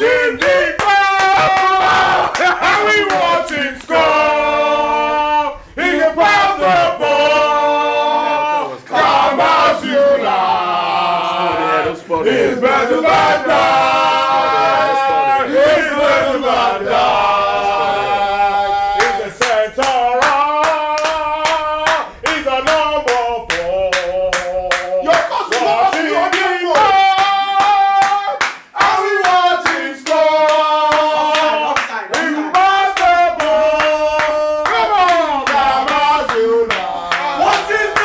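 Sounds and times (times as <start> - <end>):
hand claps: 0.0 - 4.1, 19.0 - 38.0
men singing a football chant: 0.0 - 38.0.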